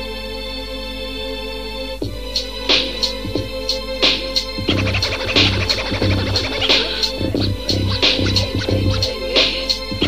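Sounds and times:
hip hop beat drums and bass: 2.0 - 10.0
turntable scratching: 4.6 - 10.0.

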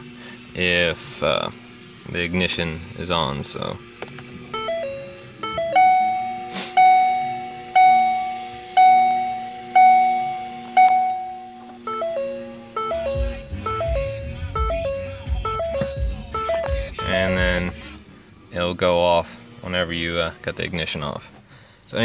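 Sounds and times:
dashboard warning chime dings: 4.5 - 17.9.

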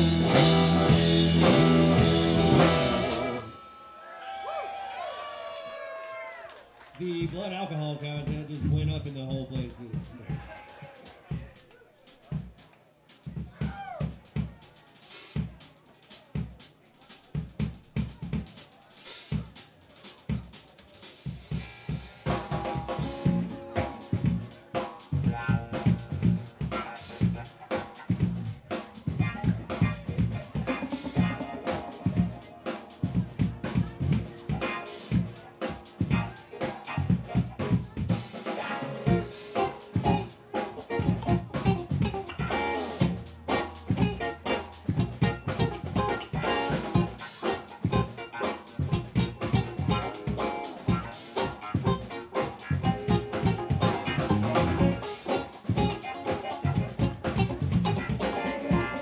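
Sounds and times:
drum kit playing: 0.0 - 3.5, 7.3 - 59.0
electric guitars: 0.0 - 3.7, 29.1 - 59.0
keyboard: 0.0 - 4.0, 22.3 - 59.0.

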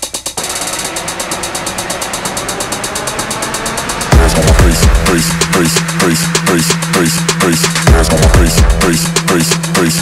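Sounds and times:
fast drum roll: 0.0 - 9.8
dense noise wash: 0.4 - 7.8.

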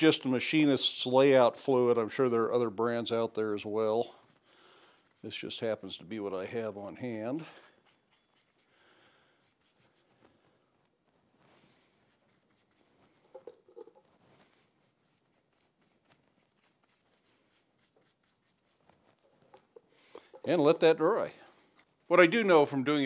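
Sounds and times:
faint brushing on steel: 2.0 - 23.0.

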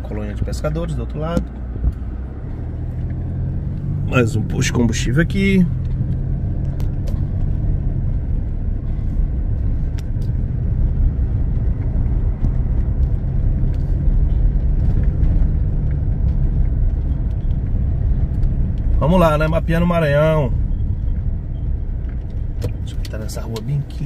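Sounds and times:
car driving on paved street: 0.0 - 24.0.

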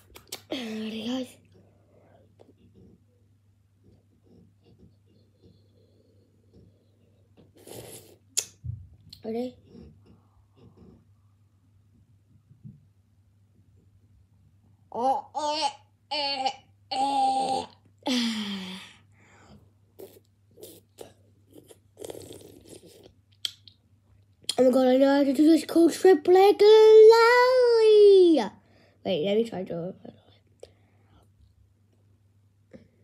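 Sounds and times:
lip smack: 0.0 - 0.5, 7.6 - 8.6, 23.3 - 23.8
breathy slurp: 20.0 - 23.1
sucking ice lolly: 20.0 - 23.1.

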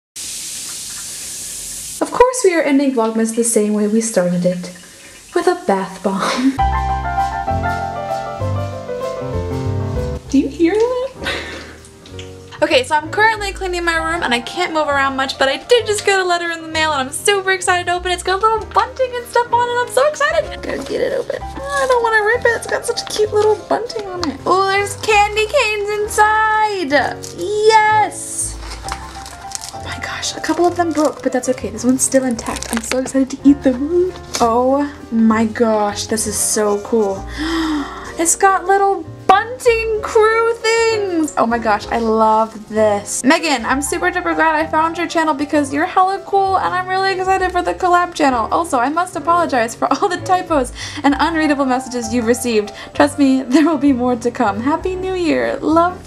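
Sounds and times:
bath bomb fizzing in water: 0.2 - 2.2, 26.9 - 33.5
faint music: 2.0 - 56.0
plastic wrapper crinkling: 20.6 - 34.5.

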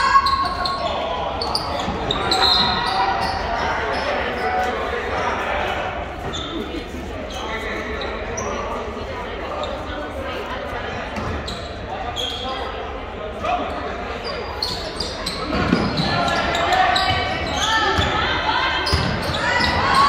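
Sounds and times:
sneaker squeaks: 0.0 - 4.8, 6.1 - 8.9, 11.1 - 12.9, 13.7 - 20.0
spectators' voices: 0.0 - 20.0.

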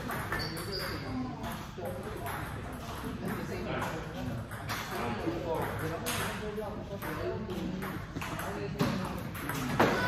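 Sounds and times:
people talking in a large hall: 0.0 - 10.0
table tennis balls clicking: 0.0 - 10.0.

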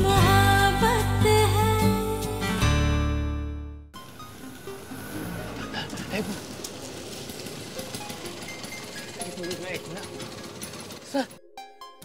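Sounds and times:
background music with held tones: 0.0 - 12.0
auto-rickshaw engine idling: 4.0 - 11.3.

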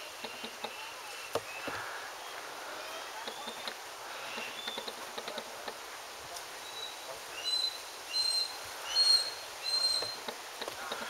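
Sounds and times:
bird whistled call: 6.6 - 10.2.

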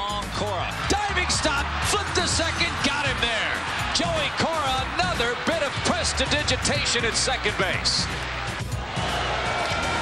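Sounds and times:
background music with low bass: 0.0 - 10.0.

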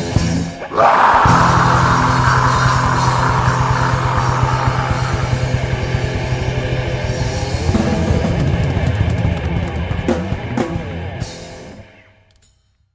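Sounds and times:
distorted guitars: 0.0 - 12.5
very fast drumming: 1.2 - 11.0.

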